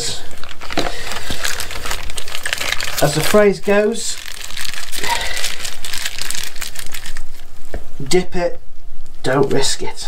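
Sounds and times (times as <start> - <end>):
plastic bag crinkling: 0.0 - 7.5.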